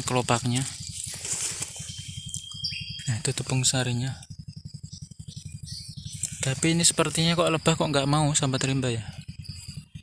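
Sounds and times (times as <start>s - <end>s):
rapid low flutter: 0.0s - 10.0s
falling bird chirp: 0.2s - 4.0s
high bird whistle: 1.0s - 3.3s.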